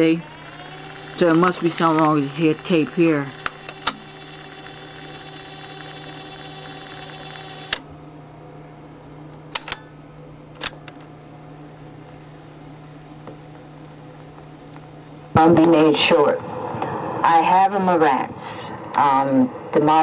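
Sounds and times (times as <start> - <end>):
cassette motor whine: 0.0 - 17.2.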